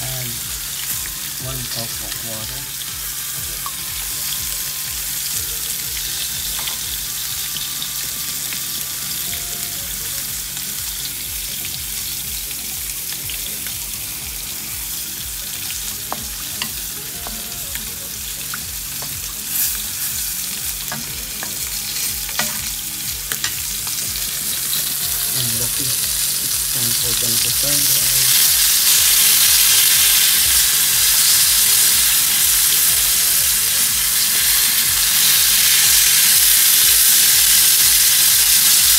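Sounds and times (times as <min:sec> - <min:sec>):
sauce sizzling and bubbling: 0:00.0 - 0:38.9.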